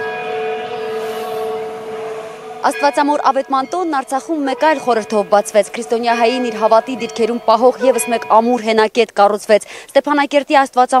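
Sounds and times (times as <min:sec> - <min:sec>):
church bell ringing: 0:00.0 - 0:08.9.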